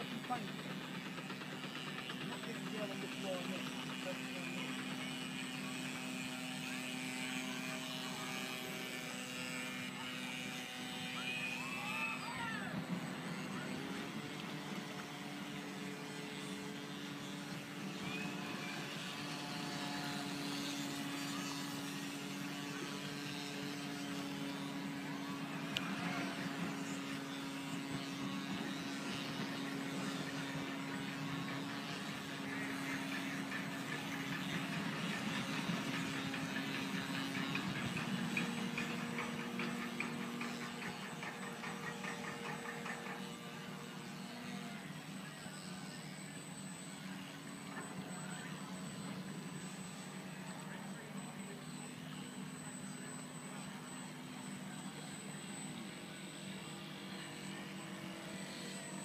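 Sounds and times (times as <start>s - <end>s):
electric boat motor whine: 0.0s - 59.0s.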